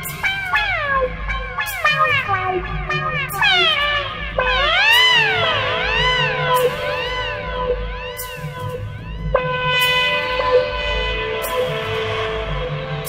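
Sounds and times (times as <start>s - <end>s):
electric trumpet swooping: 0.0s - 13.0s
pulsing bass: 0.0s - 13.0s.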